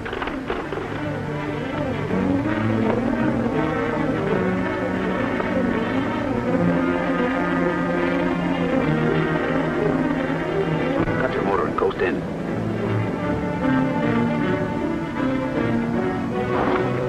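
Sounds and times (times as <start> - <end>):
orchestral music: 0.0 - 17.0.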